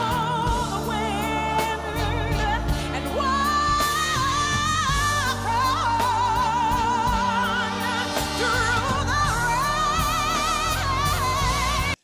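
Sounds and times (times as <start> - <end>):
instrumental backing: 0.0 - 12.0
woman singing gospel ballad: 0.0 - 12.0.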